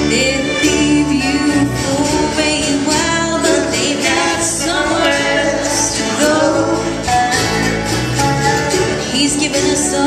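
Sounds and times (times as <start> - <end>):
acoustic bluegrass band playing: 0.0 - 10.0.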